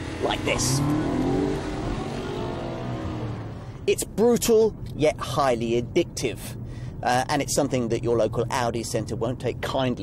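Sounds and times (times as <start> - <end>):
car engine accelerating hard: 0.0 - 3.8.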